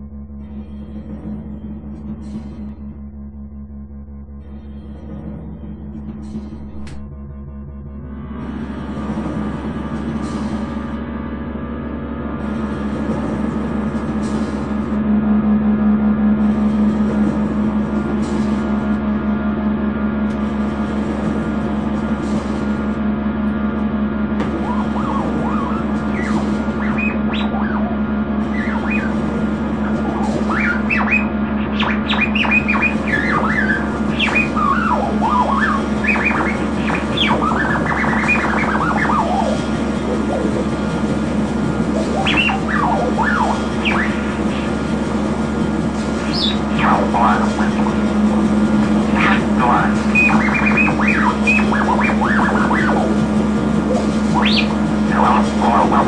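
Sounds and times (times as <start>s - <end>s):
steady low drone hum: 0.0s - 56.0s
squeaking and chirping glides: 12.4s - 15.1s, 15.9s - 56.0s.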